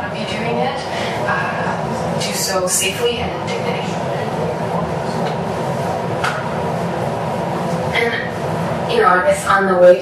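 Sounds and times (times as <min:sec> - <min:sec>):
low room rumble and hum: 0:00.0 - 0:10.0.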